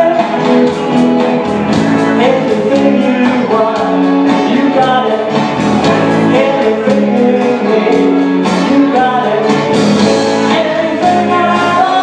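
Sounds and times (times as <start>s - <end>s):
backing track: 0.0s - 12.0s
electric bass: 0.0s - 12.0s
electric guitar: 0.0s - 12.0s
electronic drum kit: 0.0s - 12.0s.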